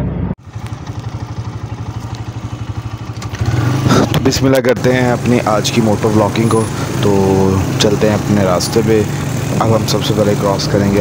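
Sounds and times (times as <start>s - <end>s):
small motorcycle engine putter: 0.5s - 4.4s.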